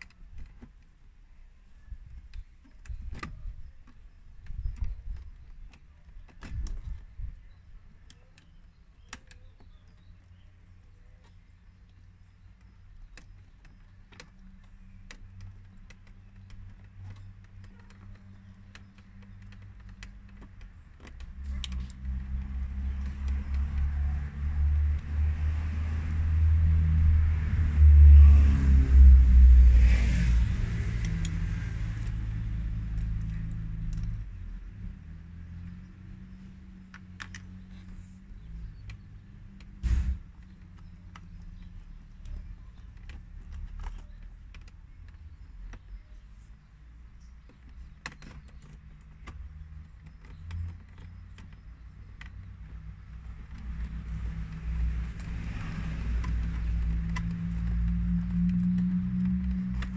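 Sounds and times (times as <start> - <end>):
plastic trim clicks and rattles: 2.0 - 25.1, 47.2 - 59.9
vehicle driving past: 21.9 - 38.0, 53.1 - 59.9
sharp knock: 39.8 - 40.2.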